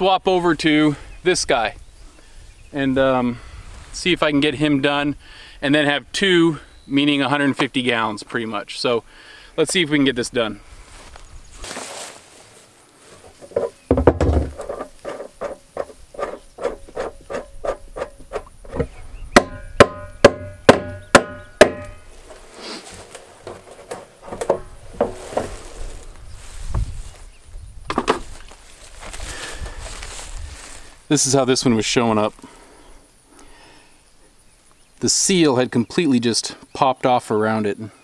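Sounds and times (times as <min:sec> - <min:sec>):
drum handling and scraping: 0:13.0 - 0:27.2, 0:27.8 - 0:30.8
hollow knocks on plastic drum: 0:13.4 - 0:22.0
quick rubbing clicks: 0:14.5 - 0:19.0.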